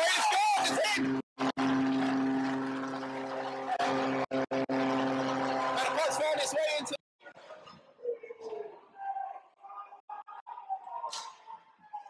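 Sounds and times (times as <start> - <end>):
crowd cheering: 0.0 - 12.0
goal horn blast: 1.0 - 6.7.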